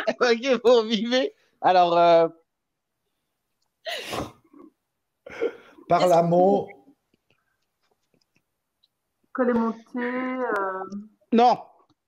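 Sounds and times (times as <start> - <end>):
person's sharp burst of breath: 3.9 - 4.4.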